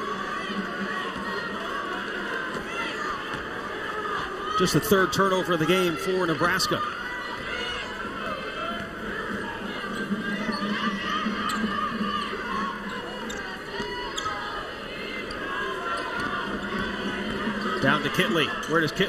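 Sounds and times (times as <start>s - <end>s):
murmur of crowd voices: 0.0s - 19.0s
sneakers squeaking: 6.8s - 19.0s.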